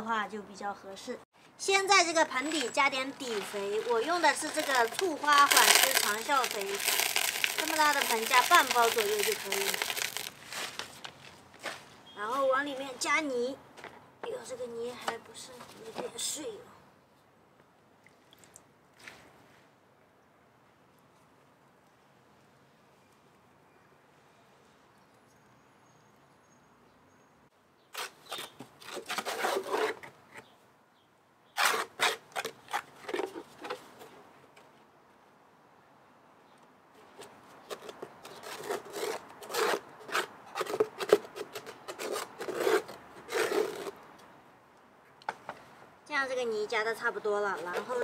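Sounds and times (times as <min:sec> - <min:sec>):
mud scraped from plastic pot: 0:01.8 - 0:11.9, 0:28.0 - 0:30.2, 0:31.6 - 0:34.2, 0:37.6 - 0:44.0.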